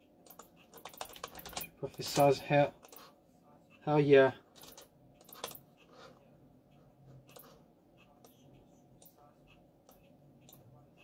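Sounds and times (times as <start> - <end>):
computer keyboard keys clicking: 0.2 - 2.2, 4.6 - 5.6.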